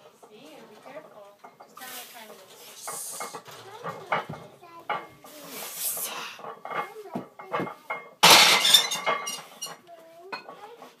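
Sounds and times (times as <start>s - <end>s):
weight plates clinking and ringing: 6.4s - 10.7s.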